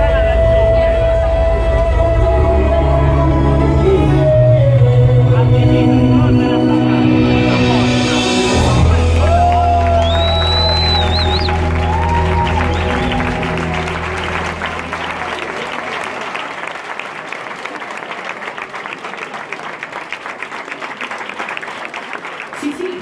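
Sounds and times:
audience applauding: 8.8s - 23.0s
shrill whistle: 9.8s - 13.4s
dance music chord: 11.2s - 15.3s.

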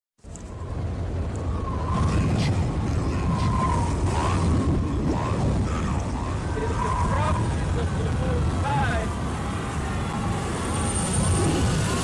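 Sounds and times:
steady low rumble: 0.2s - 12.0s.

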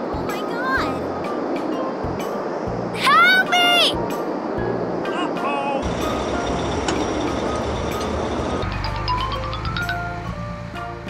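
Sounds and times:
background music: 0.0s - 11.0s
rushing noise: 2.6s - 10.6s
low vehicle-like rumble: 5.8s - 11.0s.

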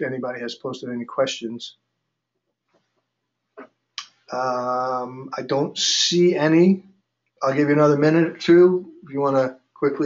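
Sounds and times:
person speaking: 0.0s - 1.7s, 4.3s - 10.0s
soft voice-like sound: 4.3s - 6.8s, 7.4s - 10.0s.

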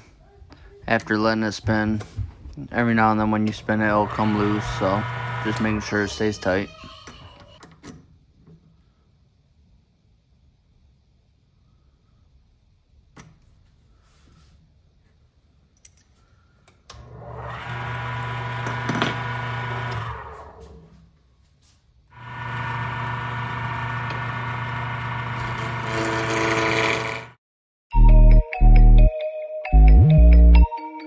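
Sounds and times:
lathe motor hum and whine: 3.8s - 6.0s, 17.2s - 20.6s, 22.2s - 27.2s.

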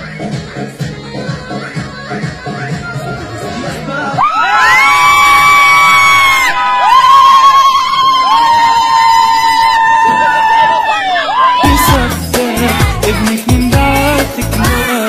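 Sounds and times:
women ululating: 4.2s - 13.1s.

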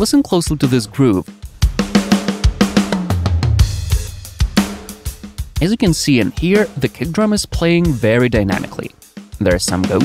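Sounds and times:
snare drum: 1.8s - 10.0s.

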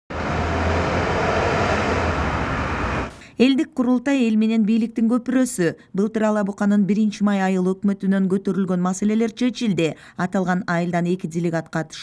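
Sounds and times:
cars driving slowly: 0.1s - 3.2s.

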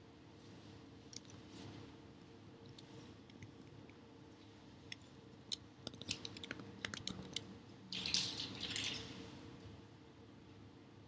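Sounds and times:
computer keyboard keys clicking: 5.5s - 7.4s.

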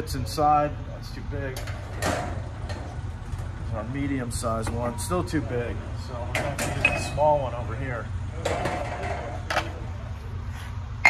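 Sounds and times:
low shop hum: 0.0s - 11.0s.

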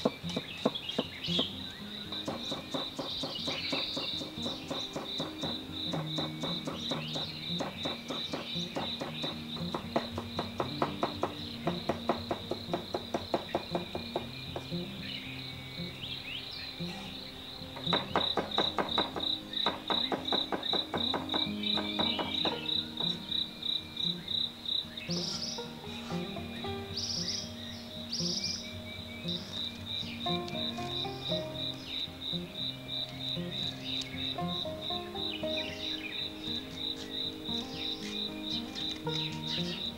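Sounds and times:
insect pulsing high chirp: 0.0s - 39.9s
soft background music: 0.0s - 39.9s
cleaver chopping on wooden block: 2.3s - 14.7s, 17.8s - 23.2s.

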